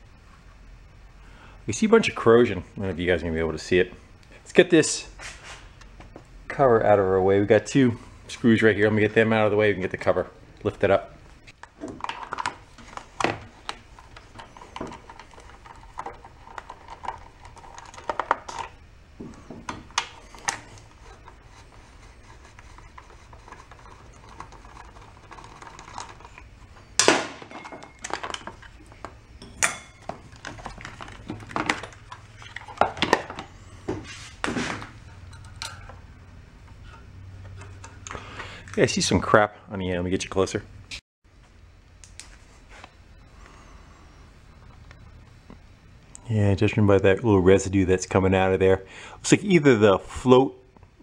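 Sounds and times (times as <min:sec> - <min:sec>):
screws clattering on plastic and metal: 0:11.6 - 0:21.7, 0:22.4 - 0:33.5.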